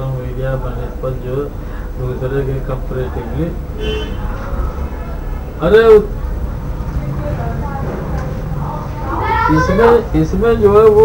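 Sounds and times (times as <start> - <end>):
faint voices: 0.0 - 11.0
low background rumble: 0.0 - 11.0.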